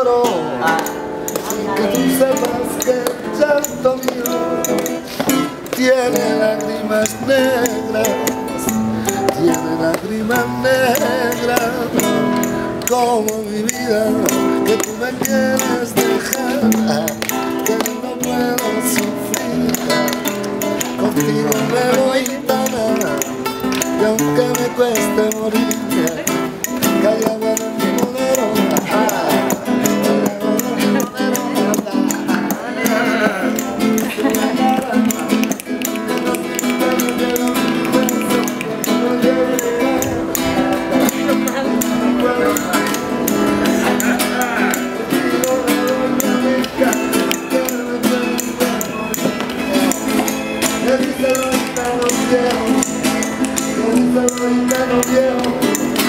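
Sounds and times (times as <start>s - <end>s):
flamenco guitar playing: 0.0s - 56.0s
sharp percussive hits: 0.0s - 56.0s
voices calling out: 0.0s - 56.0s.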